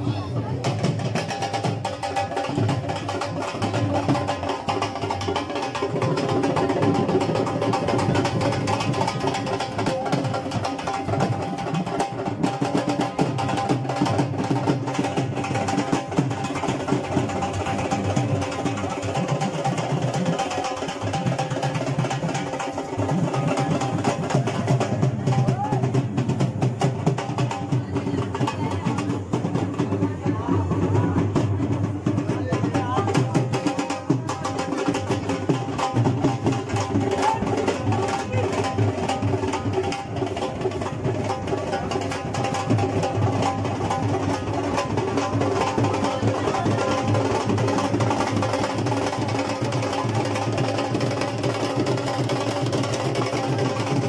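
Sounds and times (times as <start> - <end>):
crowd voices: 0.0 - 54.0
drums beaten in a rhythm: 0.0 - 54.0.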